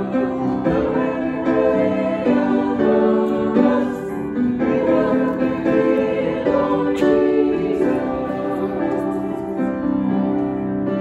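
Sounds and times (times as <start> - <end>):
people singing worship song: 0.0 - 10.4
grand piano accompaniment: 0.0 - 11.0.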